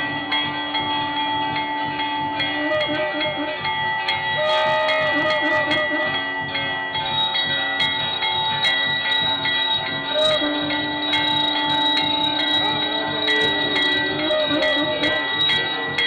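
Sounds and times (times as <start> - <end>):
bells ringing: 0.0 - 16.0
long held note: 0.0 - 16.0
steady drum beat: 0.0 - 16.0.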